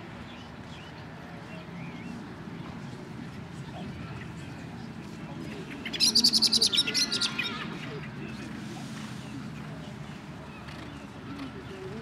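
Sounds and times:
low background murmur: 0.0s - 12.0s
songbird trilling: 5.9s - 7.6s.

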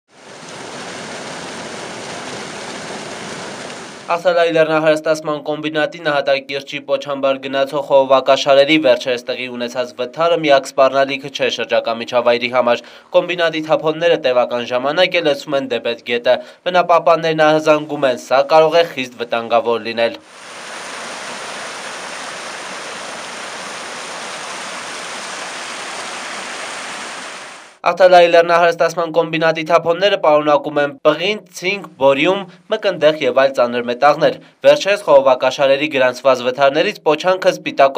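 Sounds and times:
stream rushing over boulders: 0.1s - 4.1s, 20.2s - 27.8s
slurry gushing from pipe: 20.2s - 27.8s.

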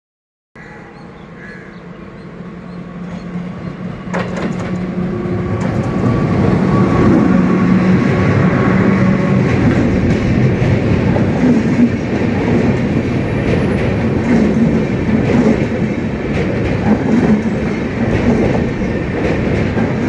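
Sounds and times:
train wheels rumbling on rail: 1.3s - 20.0s
clacks over rail joints: 4.0s - 7.2s, 9.3s - 20.0s.

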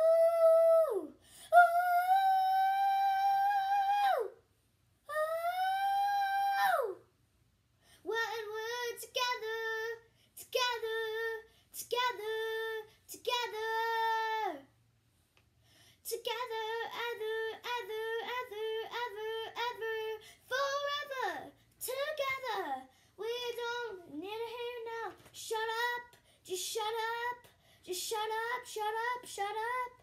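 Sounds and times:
girl singing without words: 0.0s - 7.2s, 7.9s - 14.8s, 16.0s - 30.0s.

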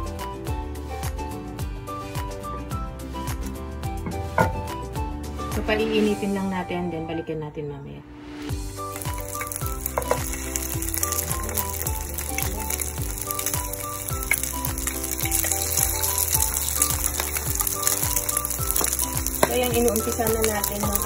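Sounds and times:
background music with steady beat: 0.0s - 7.2s, 8.1s - 21.0s
meat sizzling in hot oil: 8.6s - 21.0s.

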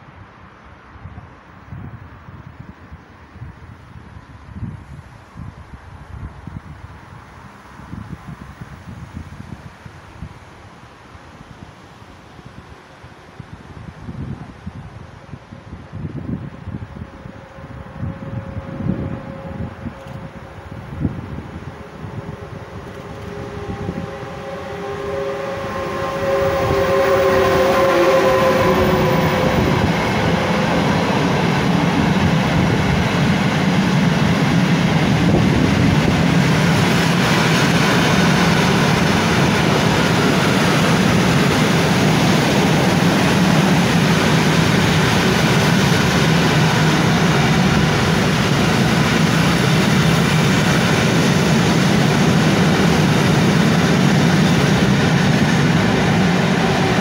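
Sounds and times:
train wheels rumbling on rails: 13.0s - 57.0s
electric locomotive motors whining: 16.6s - 57.0s.

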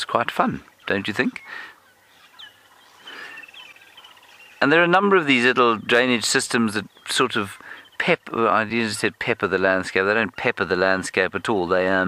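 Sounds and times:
quick repeated bird notes: 0.5s - 9.1s.

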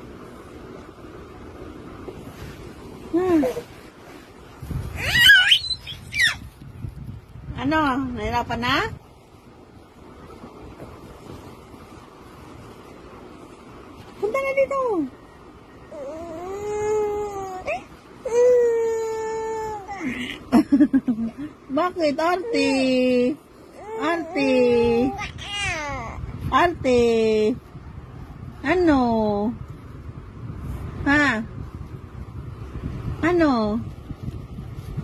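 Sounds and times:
baby squealing: 4.9s - 6.4s, 25.1s - 26.2s
baby crying: 25.1s - 26.2s.

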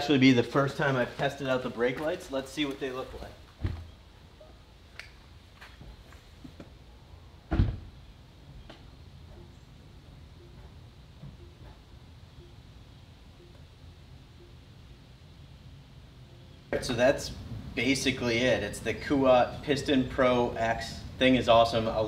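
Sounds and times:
dull thump: 7.5s - 7.9s.

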